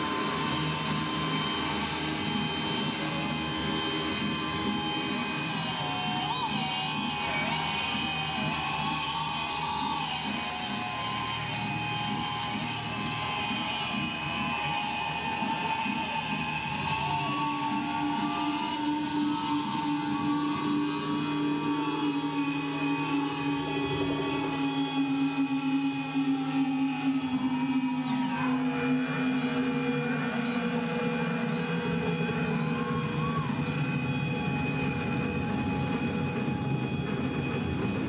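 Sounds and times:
droning wavering tones: 0.0 - 38.0.

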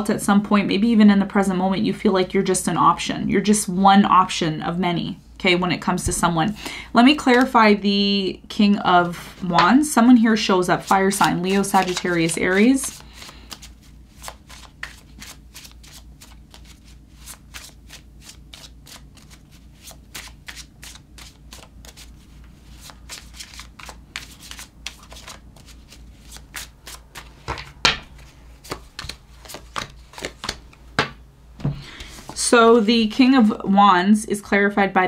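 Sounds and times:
cards being shuffled: 10.6 - 32.4.

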